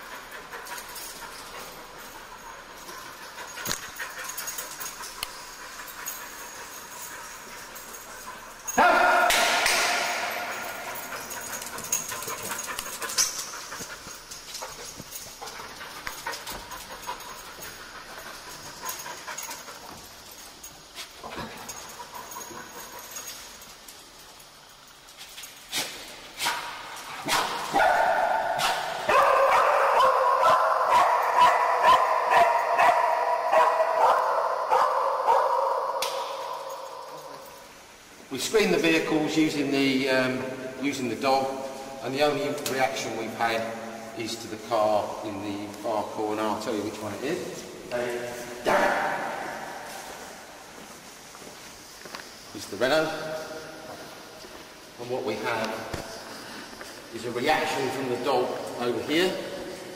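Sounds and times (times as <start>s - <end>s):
dog barking: 8.7s - 10.3s, 27.2s - 36.5s.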